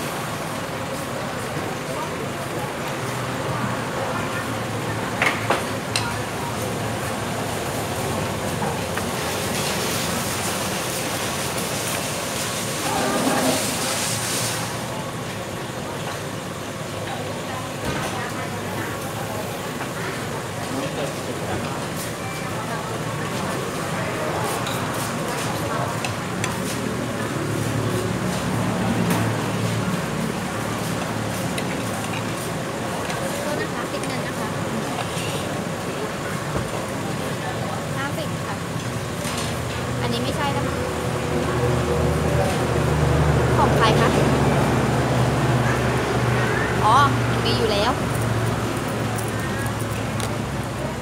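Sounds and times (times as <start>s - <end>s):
faint voices: 0.0s - 51.0s
road traffic rumble and hiss: 0.0s - 51.0s.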